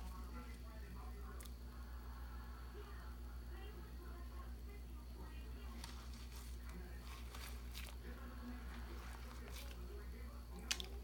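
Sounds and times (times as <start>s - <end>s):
faint background voices: 0.0s - 11.0s
steady low hum: 0.0s - 11.0s.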